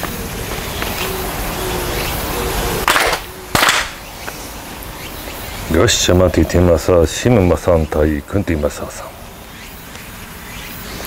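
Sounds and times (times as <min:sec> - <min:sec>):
group clapping hands: 0:02.9 - 0:04.0.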